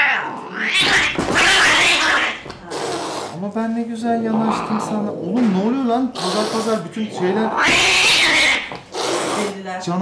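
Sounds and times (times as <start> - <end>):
kitten crying defensively: 0.0 - 2.4, 7.5 - 8.7.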